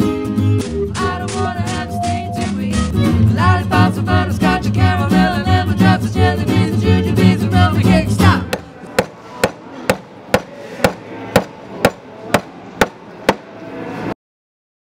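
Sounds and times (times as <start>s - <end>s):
song with singing: 0.4s - 9.5s
hammer striking wooden board: 8.5s - 13.5s.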